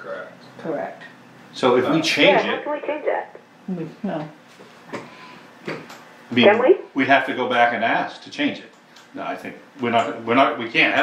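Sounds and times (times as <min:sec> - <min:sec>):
person speaking: 0:01.9 - 0:03.1, 0:06.4 - 0:06.8.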